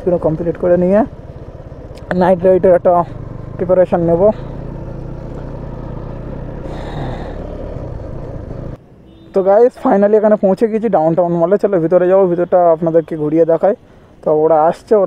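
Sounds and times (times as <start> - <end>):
motorcycle engine running: 0.0 - 8.8
wind and road noise: 0.0 - 15.0.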